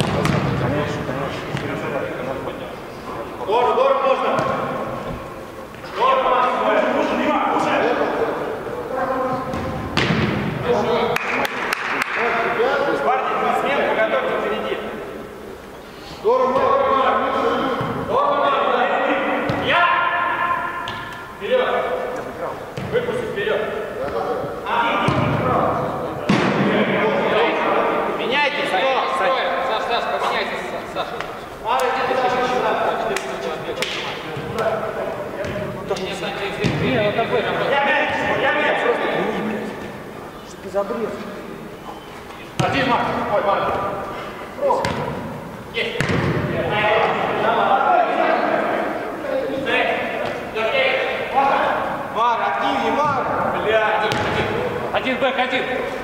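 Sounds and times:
ball being kicked: 0.0s - 0.6s, 9.5s - 10.4s, 46.0s - 46.4s
players shouting in echoing hall: 0.0s - 40.2s, 42.5s - 56.0s.

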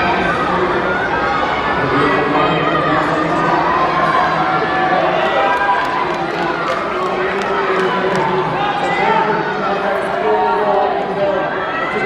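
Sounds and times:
crowd shouting: 0.0s - 12.0s
hands clapping: 5.5s - 8.3s.

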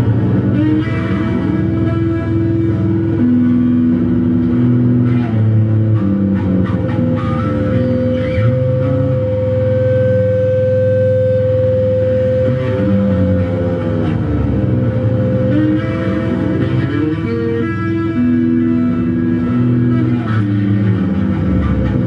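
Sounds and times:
electric bass through effects: 0.0s - 22.0s
long higher bass tone: 0.0s - 22.0s.

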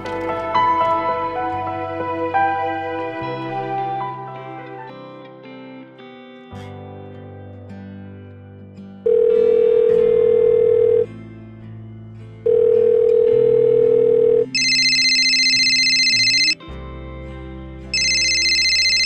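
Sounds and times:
soft background music: 0.0s - 19.0s
telephone ringing: 9.1s - 11.1s, 12.5s - 16.6s, 18.0s - 19.0s.

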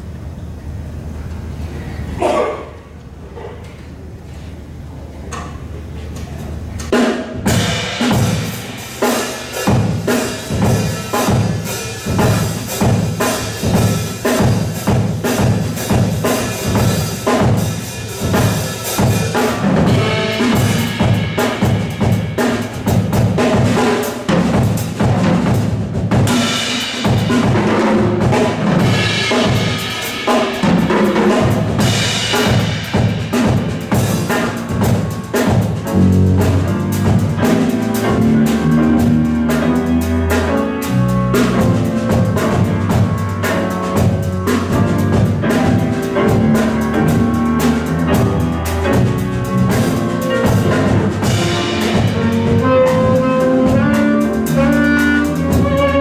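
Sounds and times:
piano: 4.6s - 56.0s
electric bass: 4.8s - 56.0s
drum kit steady beat: 6.8s - 56.0s
saxophone: 48.2s - 56.0s.

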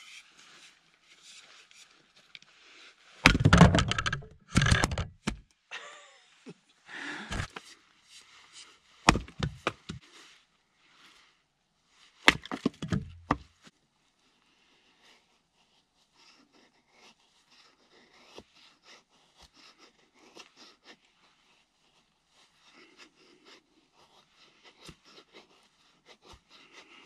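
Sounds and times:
axe chopping firewood: 3.2s - 5.4s, 7.3s - 7.5s, 9.0s - 10.0s, 12.2s - 13.5s
cracking wood and falling pieces: 3.2s - 5.4s, 12.3s - 13.4s
small axe tapping kindling: 3.3s - 5.4s.

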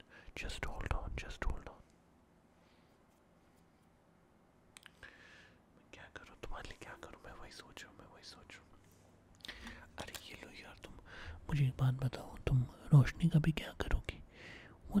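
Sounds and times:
man whispering: 0.0s - 1.9s, 5.8s - 8.9s, 9.6s - 15.0s
man speaking softly: 0.3s - 1.9s, 6.0s - 8.8s.

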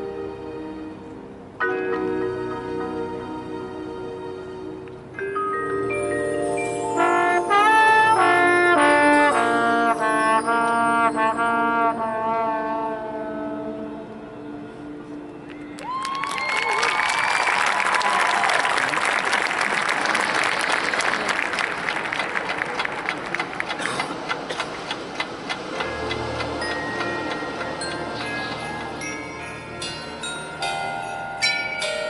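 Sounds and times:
brass band sustained chord: 6.8s - 15.4s.

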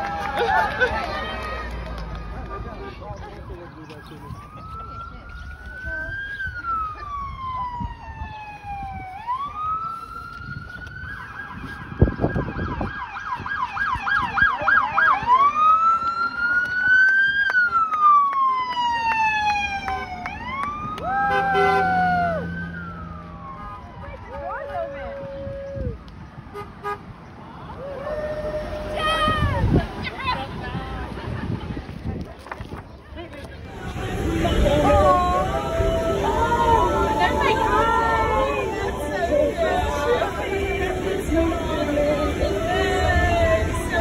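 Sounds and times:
emergency siren wailing and yelping: 4.0s - 25.1s, 34.4s - 44.0s
horn blast: 21.2s - 22.2s.

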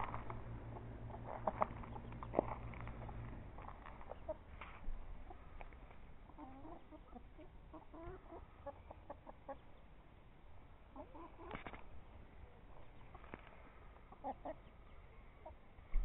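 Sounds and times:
chickens clucking: 0.0s - 10.0s, 10.6s - 15.8s.

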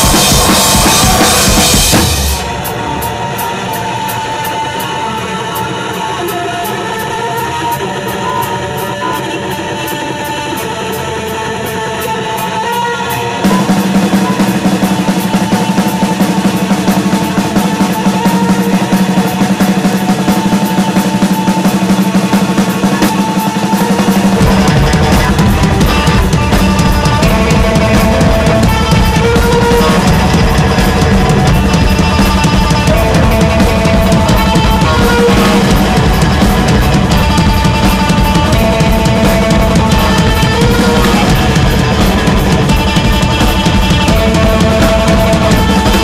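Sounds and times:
deep bass: 0.0s - 2.9s, 24.4s - 46.0s
ticking beat: 0.0s - 3.8s, 13.4s - 46.0s
heavy rock band playing: 0.0s - 46.0s.

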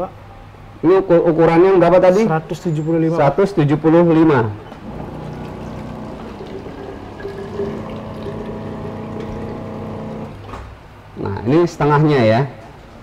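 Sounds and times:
filling machine pump running: 4.7s - 10.6s
liquid pouring into plastic bottle: 4.8s - 10.5s.

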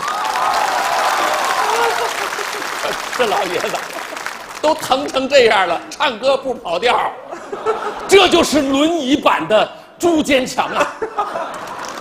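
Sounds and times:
audience applauding: 0.0s - 5.9s, 11.4s - 12.0s.

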